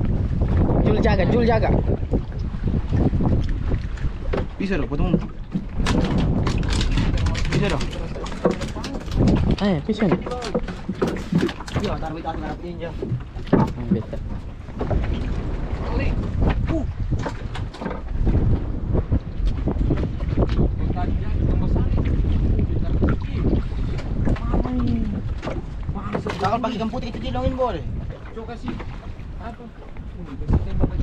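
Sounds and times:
knocks and clicks on boat deck: 0.0 - 21.0, 21.8 - 31.0
water moving around boat: 0.0 - 31.0
wind buffeting microphone: 0.0 - 31.0.

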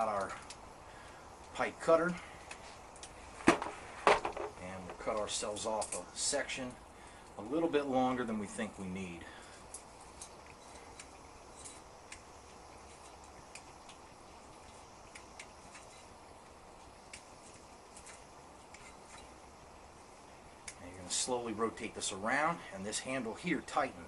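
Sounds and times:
low steady hiss: 0.0 - 24.0
metal tubing ticks and clicks: 9.6 - 14.1, 15.0 - 19.3, 20.6 - 21.0.

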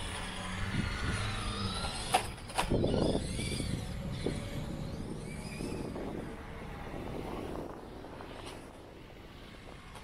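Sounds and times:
drivetrain and tyres on grass: 0.0 - 10.0
electric motor whine: 0.0 - 10.0.

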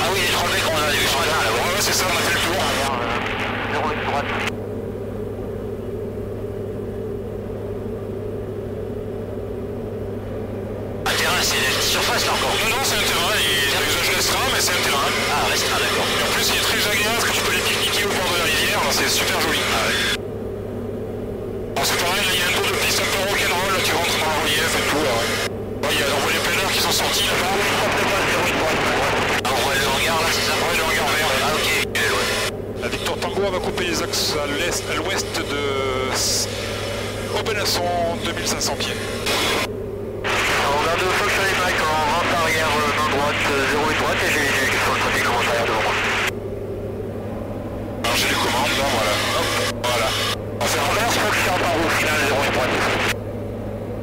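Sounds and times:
indistinct radio voices: 0.0 - 4.6, 11.0 - 20.2, 21.8 - 46.4, 47.2 - 53.2
aircraft engine and propeller drone: 0.0 - 54.0.

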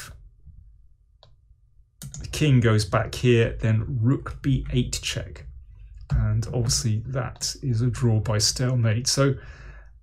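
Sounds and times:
computer mouse click: 2.0 - 2.3.

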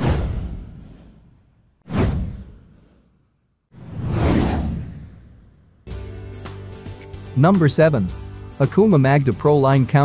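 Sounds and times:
whoosh sound effect: 3.8 - 5.5.

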